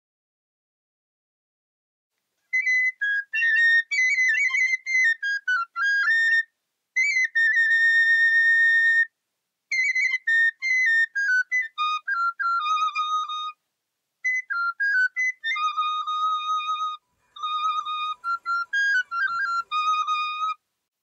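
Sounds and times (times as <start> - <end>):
bamboo flute melody: 2.5 - 9.1, 9.7 - 13.6, 14.2 - 20.6.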